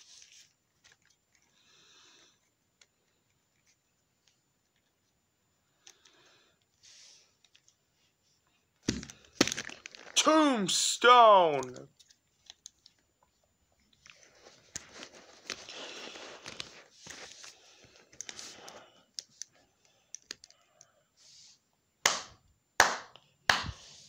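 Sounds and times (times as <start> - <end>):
plastic figures rustling on clothing: 0.0 - 5.2, 5.8 - 10.2, 11.6 - 19.8.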